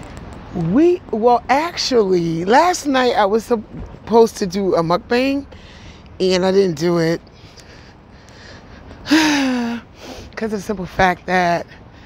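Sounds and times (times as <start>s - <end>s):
woman sighing: 9.0s - 9.9s.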